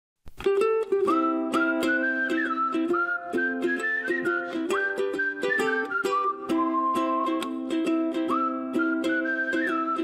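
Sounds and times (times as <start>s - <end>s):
strummed small string instrument: 0.3s - 10.0s
whistled melody: 0.6s - 10.0s.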